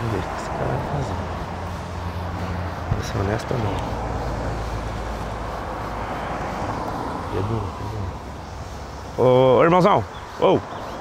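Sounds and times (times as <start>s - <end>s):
car driving past: 0.0s - 9.4s.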